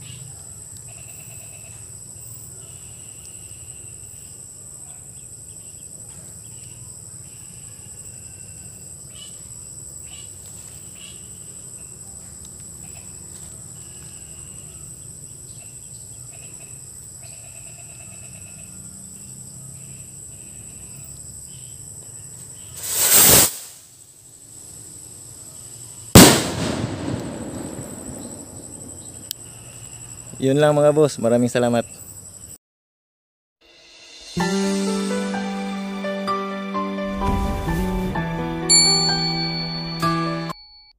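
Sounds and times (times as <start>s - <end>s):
insects chirping: 0.0s - 32.6s
firecracker bang: 22.8s - 23.8s, 26.2s - 29.7s, 37.1s - 39.3s
rocket whooshing upward: 22.8s - 23.8s, 26.2s - 29.3s, 37.0s - 38.5s.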